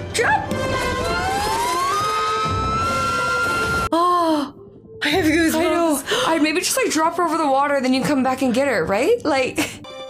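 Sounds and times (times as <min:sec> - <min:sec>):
action film music: 0:00.0 - 0:08.0.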